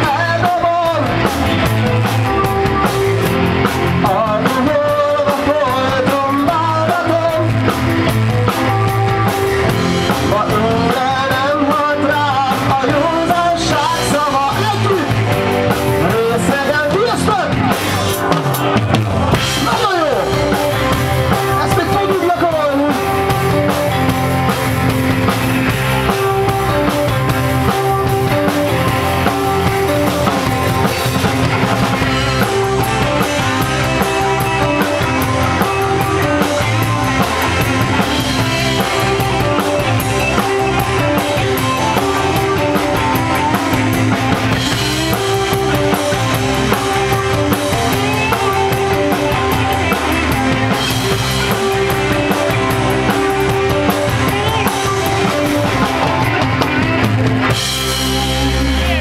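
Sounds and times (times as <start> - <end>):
drum kit beat: 0.0 - 59.0
live band playing: 0.0 - 59.0.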